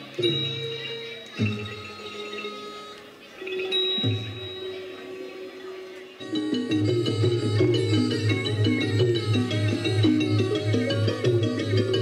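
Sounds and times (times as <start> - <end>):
classical ensemble struck notes: 0.0 - 12.0.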